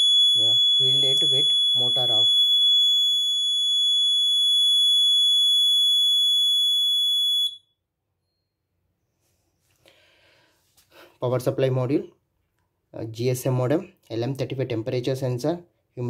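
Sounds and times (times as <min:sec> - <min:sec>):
high-pitched buzzer alarm tone: 0:00.0 - 0:07.7.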